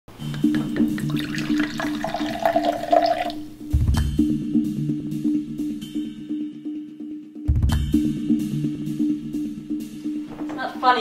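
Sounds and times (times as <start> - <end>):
liquid pouring into glass: 0.3 - 3.6
background music low pulse: 3.4 - 10.9.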